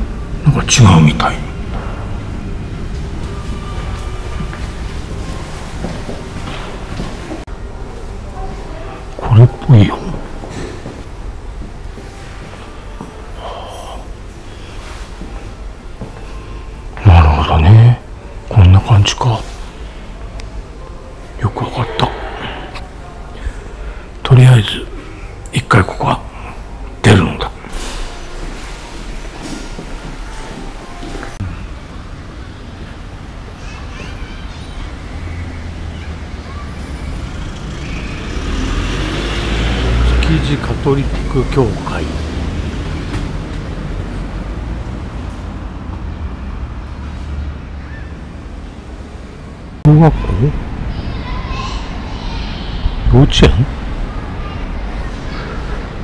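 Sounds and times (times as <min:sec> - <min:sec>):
person breathing: 0:22.3 - 0:24.2
motor vehicle passing: 0:35.0 - 0:49.8.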